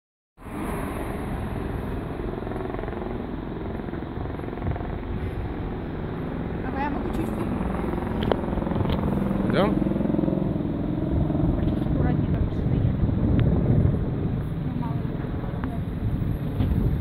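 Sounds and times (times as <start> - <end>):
road traffic rumbling: 0.4 - 17.0.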